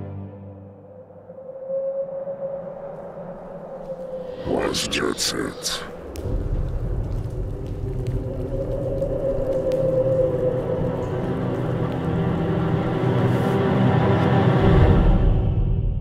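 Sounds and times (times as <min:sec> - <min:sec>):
dark sustained trailer tones: 0:03.4 - 0:16.0
low rumble: 0:03.6 - 0:16.0.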